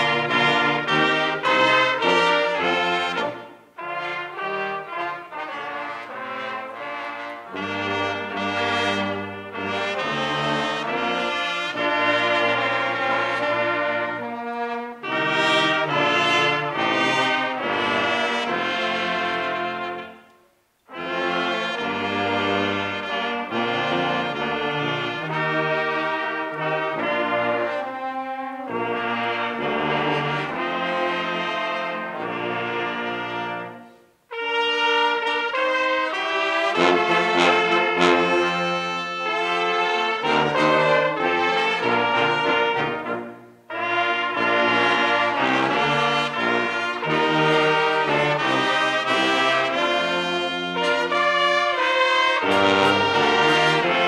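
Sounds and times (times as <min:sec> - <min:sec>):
brass band playing: 0:00.0 - 0:54.0.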